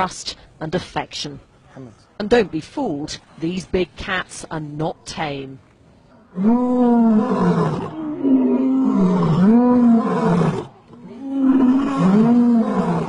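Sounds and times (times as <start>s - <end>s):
lions roaring: 6.2s - 13.0s.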